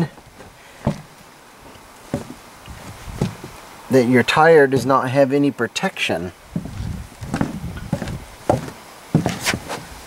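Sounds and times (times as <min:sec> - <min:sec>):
knocks on wood: 0:07.3 - 0:09.4.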